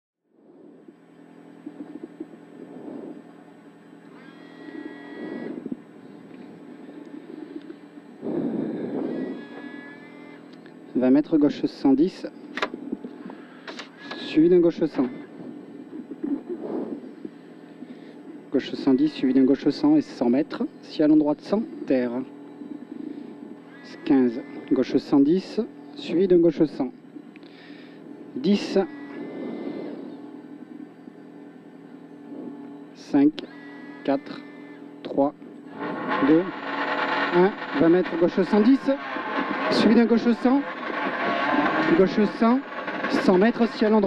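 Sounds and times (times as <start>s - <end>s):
high whine: 0.2s - 44.0s
car engine idling: 35.6s - 44.0s.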